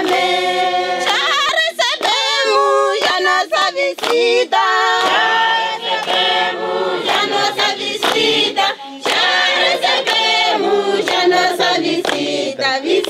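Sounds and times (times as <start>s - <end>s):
hand claps: 0.0s - 13.0s
women singing a cappella: 0.0s - 13.0s.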